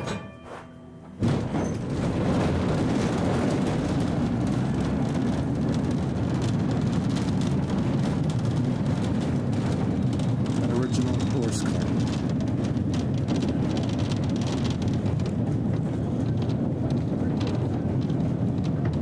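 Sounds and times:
streetcar rumbling on track: 1.1s - 19.0s.

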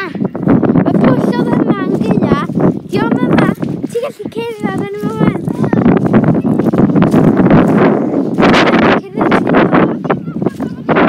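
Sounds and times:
wind buffeting microphone: 0.0s - 11.0s
boots striding through grass: 1.4s - 10.9s.

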